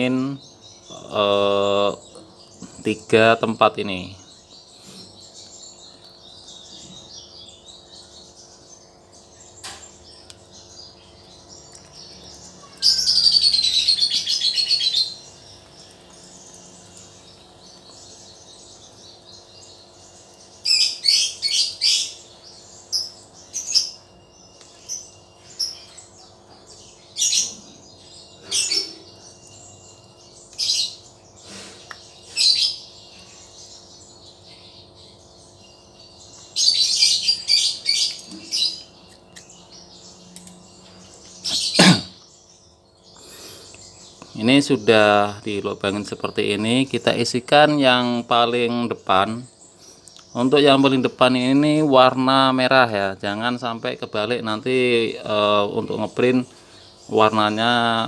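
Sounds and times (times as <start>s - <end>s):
bird chirping and warbling: 0.0s - 58.0s
faint steady hum: 0.0s - 58.0s.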